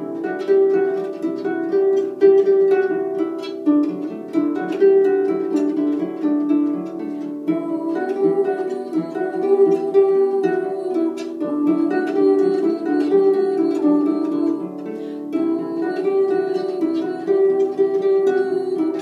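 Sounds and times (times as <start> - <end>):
harp playing solo: 0.0 - 19.0.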